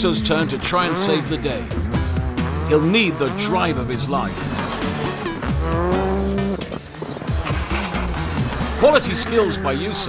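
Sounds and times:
background music: 0.0s - 10.0s
rally car engine revving hard: 0.0s - 10.0s
tyres squealing: 0.0s - 10.0s.

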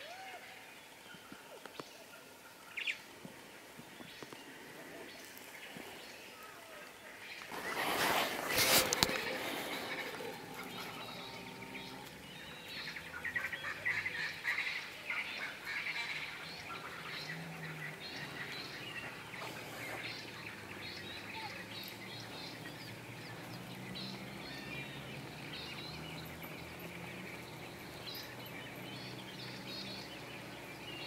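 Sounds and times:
outdoor background noise: 0.0s - 31.0s.

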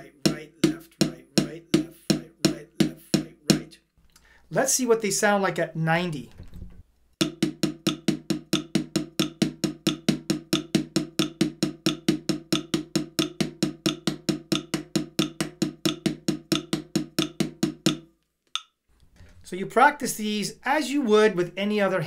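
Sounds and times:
drumsticks on practice pad: 7.2s - 18.7s.

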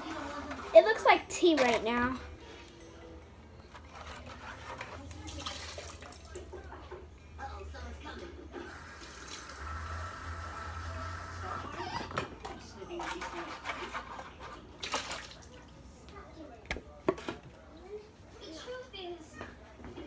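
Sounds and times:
tap water running into sink: 8.7s - 10.5s.

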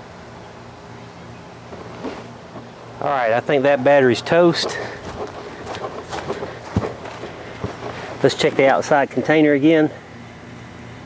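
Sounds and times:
person's footsteps: 4.2s - 9.1s.

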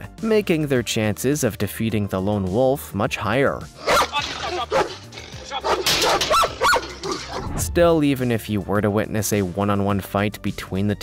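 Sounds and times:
dog barking: 3.8s - 5.0s, 5.6s - 7.5s.

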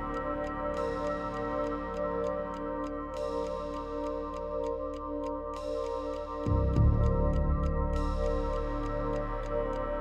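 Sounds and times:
ticking clock beat: 0.0s - 10.0s.

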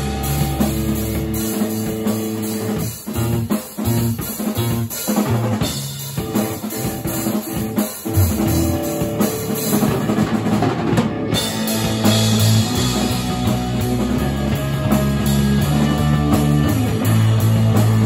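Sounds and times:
drum kit beat: 0.0s - 18.0s
live rock band playing: 0.0s - 18.0s.

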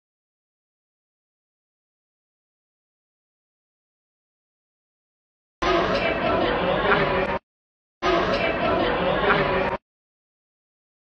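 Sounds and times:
people talking and chattering: 5.6s - 7.4s, 8.0s - 9.8s.

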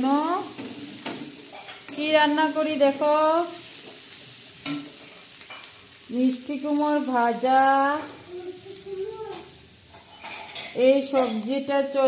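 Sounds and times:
food sizzling in oil: 0.0s - 12.0s
spatula stirring in metal pan: 0.5s - 2.5s, 9.3s - 11.5s.

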